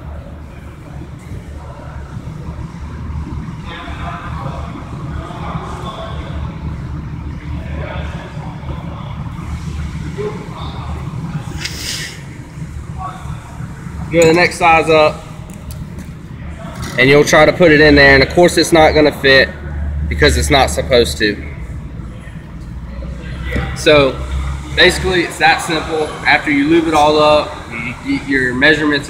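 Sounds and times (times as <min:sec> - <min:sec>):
distant voices: 0:00.0 - 0:29.0
low hum: 0:00.0 - 0:29.0.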